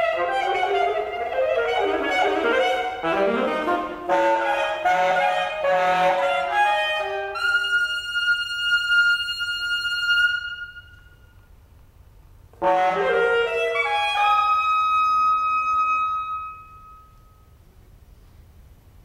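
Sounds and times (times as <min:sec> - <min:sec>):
alto saxophone playing: 0:00.0 - 0:11.4, 0:12.6 - 0:17.4.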